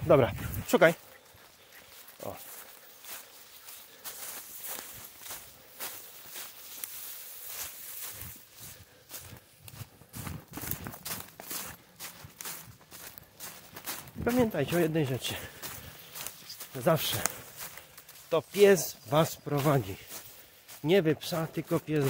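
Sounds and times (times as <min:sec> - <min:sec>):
footsteps crunching dry leaves: 0:00.0 - 0:22.0.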